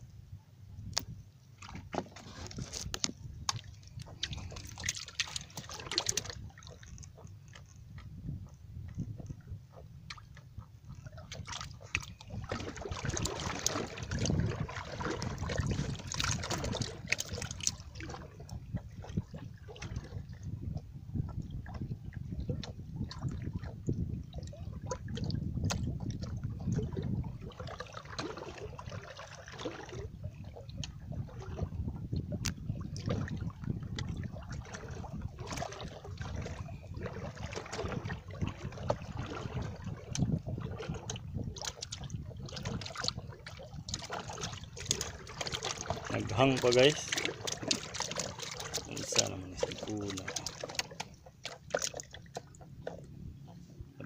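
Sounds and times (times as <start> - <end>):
water sloshing and lapping: 0.0 - 54.0.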